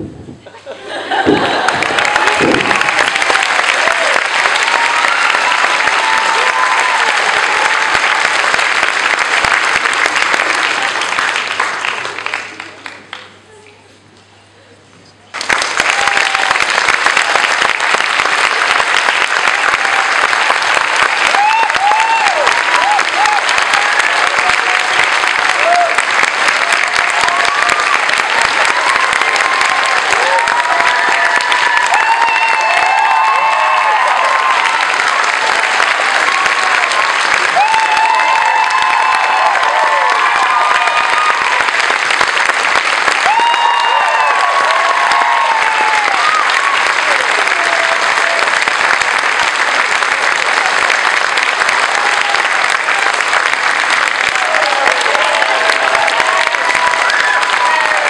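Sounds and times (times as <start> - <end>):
audience applauding: 0.8 - 13.6, 15.3 - 58.0.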